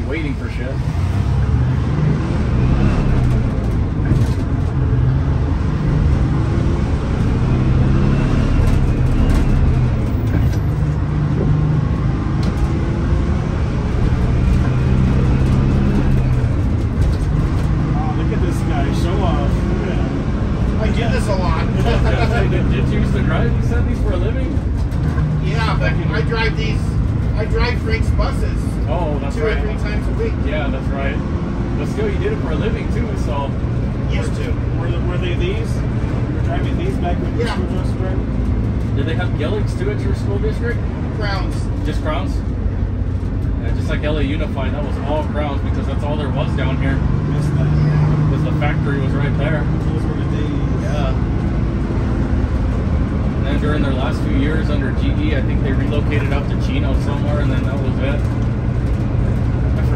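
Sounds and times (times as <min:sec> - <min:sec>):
bus engine droning: 0:00.0 - 0:59.9
road and cabin noise: 0:00.0 - 0:59.9
voices talking: 0:17.3 - 0:42.5, 0:43.6 - 0:51.3.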